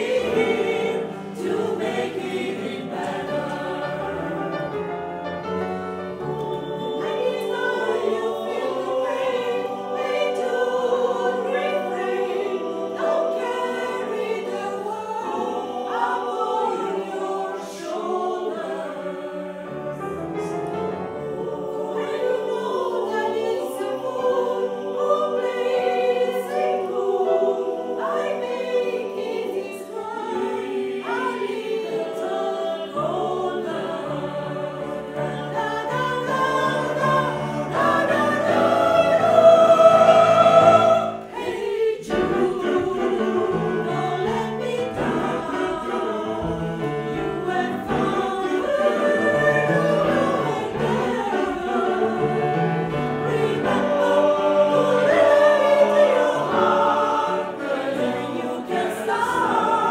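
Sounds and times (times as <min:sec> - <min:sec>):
mixed choir singing: 0:00.0 - 0:59.9.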